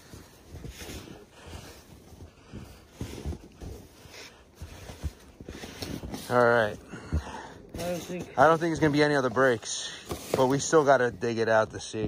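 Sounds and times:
boots tramping through deep snow: 0:00.0 - 0:11.9
snow shovel digging: 0:07.7 - 0:11.1.

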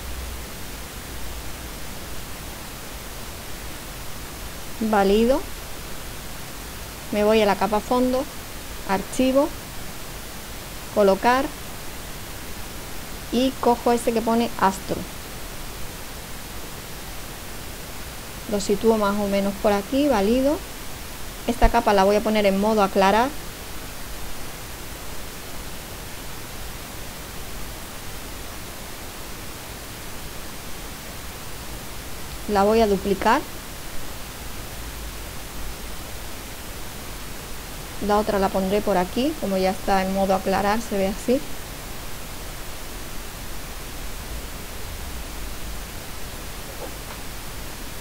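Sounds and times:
steady background hiss: 0:00.0 - 0:48.0.

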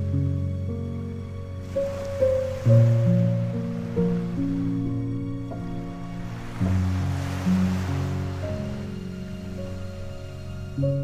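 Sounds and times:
soft background music: 0:00.0 - 0:11.0
small sea waves washing: 0:01.6 - 0:11.0.

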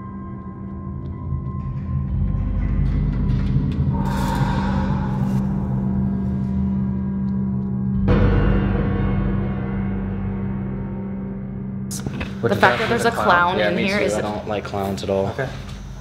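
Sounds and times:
low drone: 0:00.0 - 0:15.0
gong-like swells: 0:03.8 - 0:07.5.

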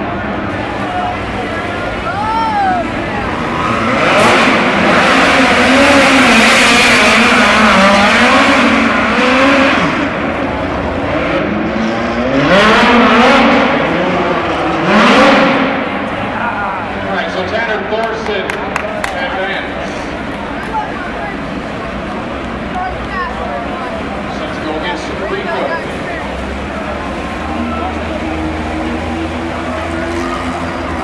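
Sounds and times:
race car engines revving: 0:00.0 - 0:31.0.

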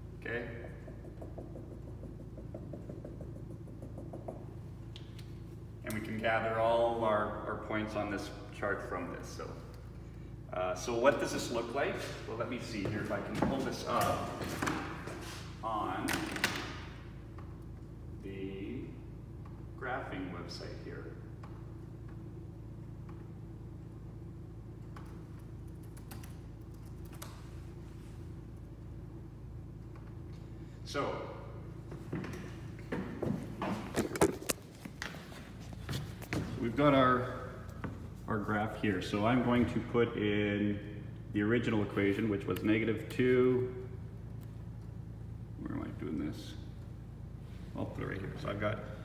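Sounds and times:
room hum: 0:00.0 - 0:49.0
marker tapping on a whiteboard: 0:00.6 - 0:04.6
computer keyboard clicks: 0:25.8 - 0:27.4.

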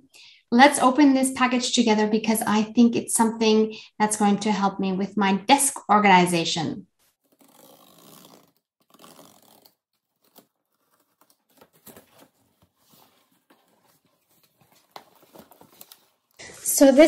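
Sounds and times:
cardboard flaps rustling: 0:08.2 - 0:17.0.

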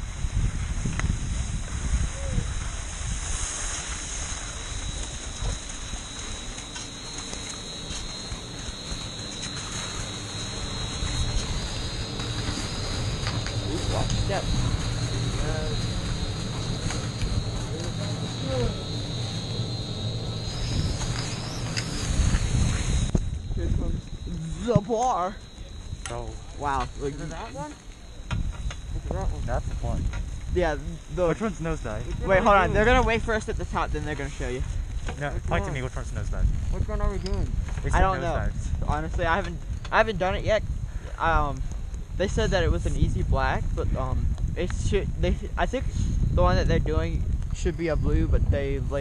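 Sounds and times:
wind rumbling on microphone: 0:00.0 - 0:49.0
skis scraping on snow: 0:00.1 - 0:10.1, 0:20.5 - 0:23.1
faint voices: 0:13.5 - 0:19.6.

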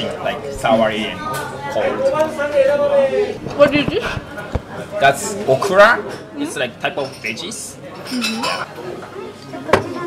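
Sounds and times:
tableware clinking: 0:06.9 - 0:08.7.

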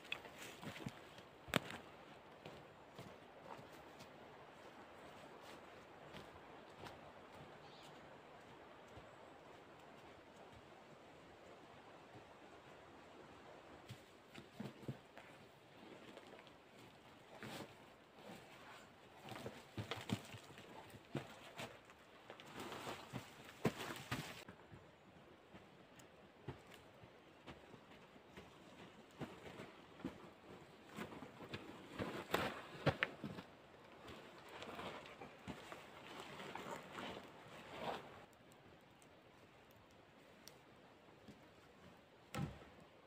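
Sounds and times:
dry logs knocking and rustling: 0:00.0 - 0:03.7, 0:19.2 - 0:24.9, 0:25.5 - 0:37.3, 0:40.4 - 0:42.9.

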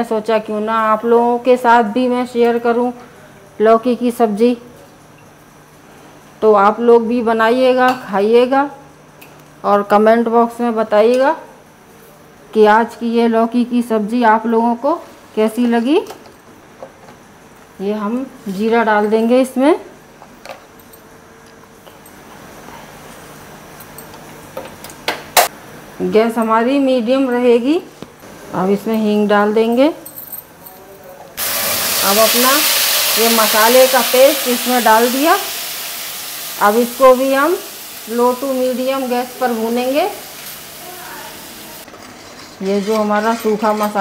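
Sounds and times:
seeds sizzling in hot oil: 0:31.4 - 0:41.9.

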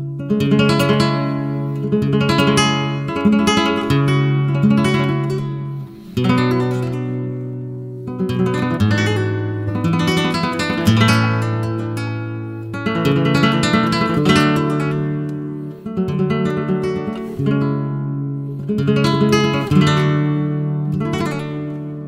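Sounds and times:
flamenco guitar playing: 0:00.0 - 0:22.0.

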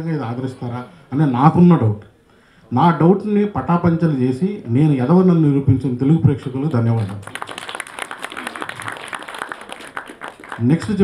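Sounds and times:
audience applause: 0:07.2 - 0:11.0.

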